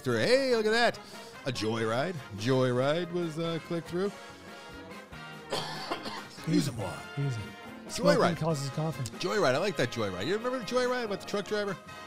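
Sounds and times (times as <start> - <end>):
quiet background music: 0.0 - 12.0
man coughing: 5.5 - 6.7.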